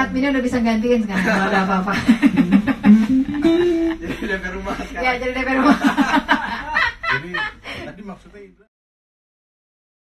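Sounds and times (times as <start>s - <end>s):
woman laughing: 1.2s - 4.4s, 5.5s - 7.6s.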